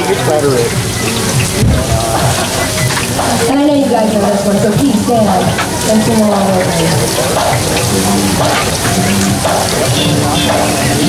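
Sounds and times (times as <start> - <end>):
oil sizzling in deep fryer: 0.0 - 11.0.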